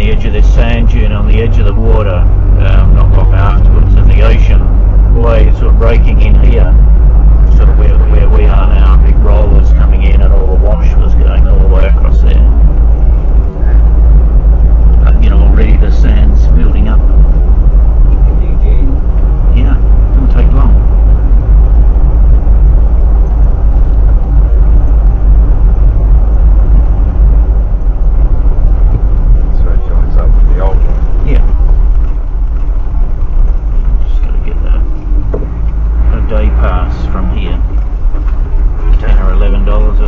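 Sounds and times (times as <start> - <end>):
vehicle road and engine rumble: 0.0 - 40.0.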